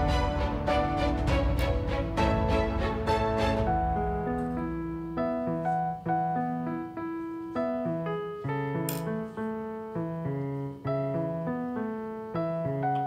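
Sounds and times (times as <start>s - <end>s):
gentle piano melody: 0.0s - 13.0s.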